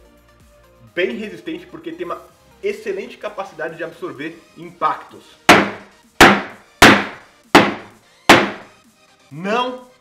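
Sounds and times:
rubber mallet thwacking toy: 5.5s - 8.7s.

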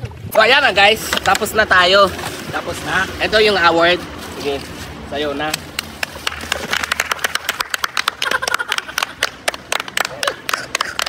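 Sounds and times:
voices: 0.3s - 11.0s
people clapping: 5.4s - 11.0s.

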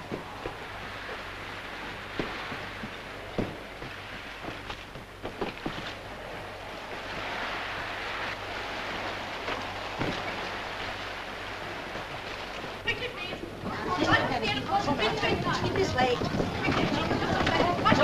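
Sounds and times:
sea splashing against boat hull: 0.0s - 18.0s
sharp knocks: 2.2s - 5.9s.

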